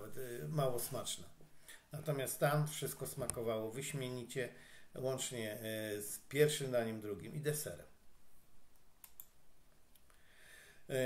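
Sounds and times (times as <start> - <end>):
faint computer clicks: 8.7 - 9.4.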